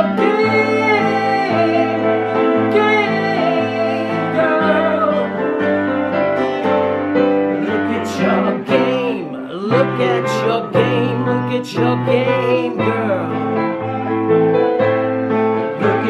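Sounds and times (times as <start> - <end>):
man singing: 0.0 - 5.6, 7.6 - 13.6, 15.8 - 16.0
acoustic guitar: 0.0 - 16.0
digital piano: 0.0 - 16.0.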